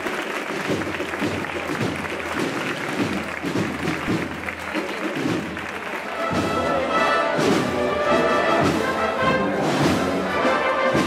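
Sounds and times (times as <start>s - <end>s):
brass band playing march: 0.0s - 11.0s
crowd applause: 0.0s - 11.0s
crowd chatter: 0.0s - 11.0s.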